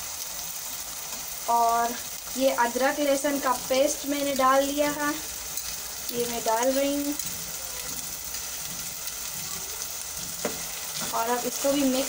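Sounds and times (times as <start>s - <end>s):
onions frying in oil: 0.0s - 12.0s.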